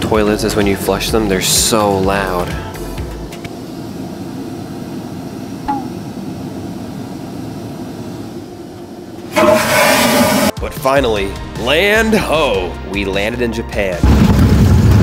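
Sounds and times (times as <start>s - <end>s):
man talking: 0.0s - 2.6s, 10.6s - 14.0s
low cabin hum: 1.1s - 10.2s
vacuum toilet flushing whoosh: 9.3s - 10.6s.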